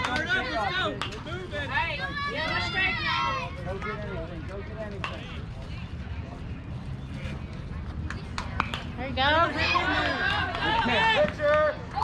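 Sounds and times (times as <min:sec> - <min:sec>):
distant voices of players and spectators: 0:00.0 - 0:12.0.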